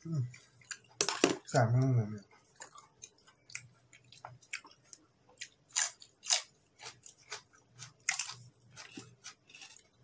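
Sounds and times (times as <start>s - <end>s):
person chewing crunchy vegetables: 0.2s - 1.1s, 2.2s - 10.0s.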